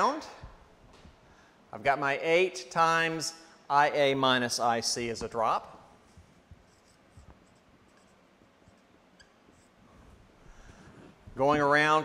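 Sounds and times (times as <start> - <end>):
marker squeaking on whiteboard: 6.0 - 11.4.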